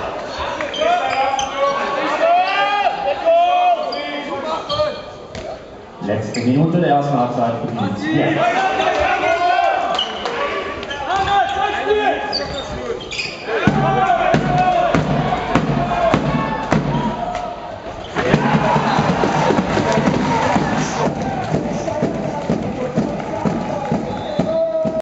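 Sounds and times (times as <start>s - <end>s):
players shouting: 0.0s - 5.0s, 7.8s - 25.0s
crowd noise: 0.0s - 25.0s
ball bouncing on hall floor: 13.6s - 17.4s.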